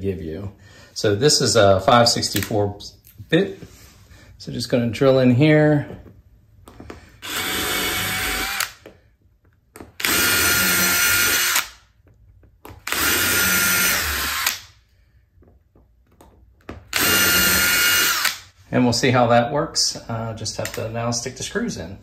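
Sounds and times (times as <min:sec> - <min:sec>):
cordless drill drilling steel: 0:07.2 - 0:08.8, 0:10.0 - 0:11.8, 0:12.8 - 0:14.7, 0:16.9 - 0:18.5.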